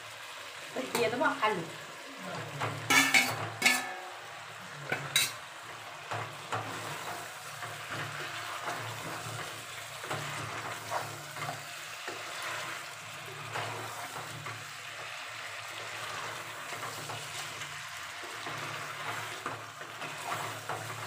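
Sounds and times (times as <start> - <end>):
food sizzling: 0.0 - 21.0
spatula scraping a pot: 15.9 - 21.0.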